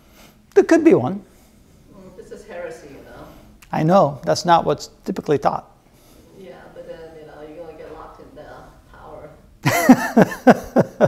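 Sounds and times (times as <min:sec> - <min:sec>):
man laughing loudly: 0:09.6 - 0:11.0.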